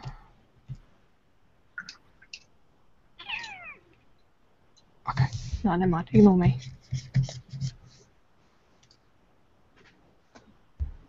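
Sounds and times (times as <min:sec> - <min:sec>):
cat meowing: 0:03.2 - 0:03.9.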